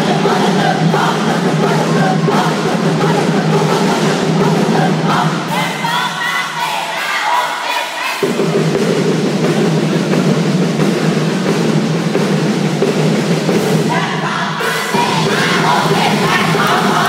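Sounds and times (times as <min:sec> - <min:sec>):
group of voices shouting: 0:13.9 - 0:17.0
loud dance music: 0:13.9 - 0:17.0.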